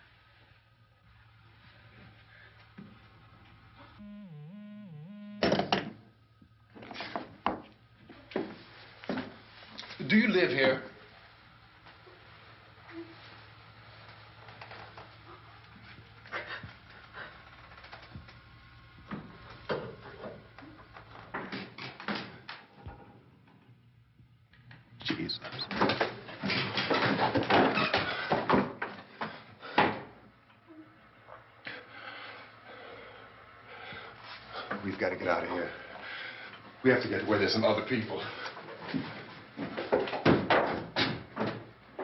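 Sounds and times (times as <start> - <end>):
sharp knocks and clatters: 39.7 - 41.7.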